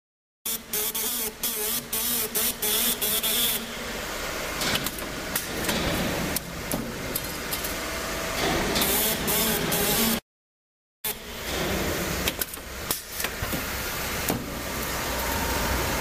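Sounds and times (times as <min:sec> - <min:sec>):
steady machine hum: 0:11.1 - 0:16.0.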